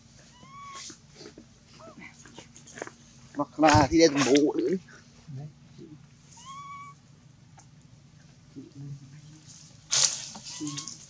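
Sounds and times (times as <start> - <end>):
macaque coo call: 0.2 - 1.0, 5.9 - 7.0, 10.4 - 11.0.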